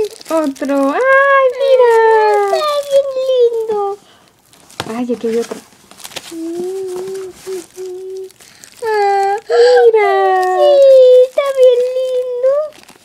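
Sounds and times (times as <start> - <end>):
faint humming voice: 6.3 - 12.7
high-pitched voice crying: 6.4 - 12.7.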